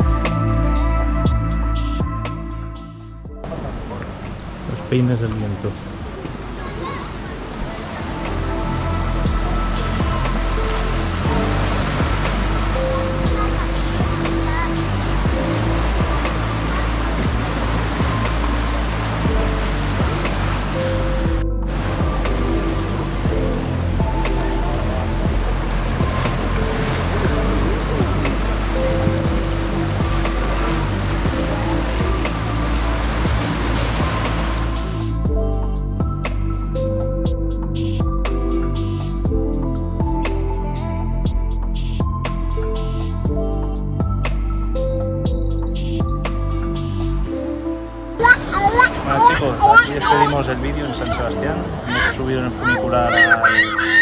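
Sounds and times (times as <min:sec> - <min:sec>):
background music of held notes: 0:00.0 - 0:54.0
sea surf washing over rocks: 0:03.5 - 0:08.9, 0:25.8 - 0:35.0, 0:48.2 - 0:54.0.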